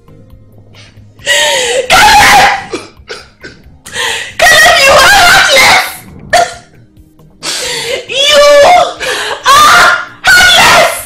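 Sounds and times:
woman wailing: 0:07.9 - 0:10.8.

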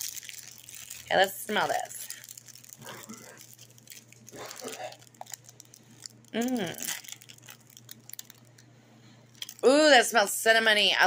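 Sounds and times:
plastic bag crinkling: 0:00.0 - 0:08.6, 0:09.3 - 0:10.2.

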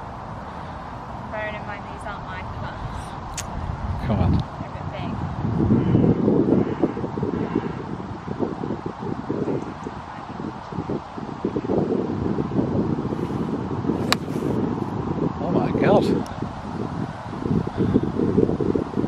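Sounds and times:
wind buffeting microphone: 0:00.0 - 0:19.0
golf iron striking ball: 0:14.0 - 0:14.5.

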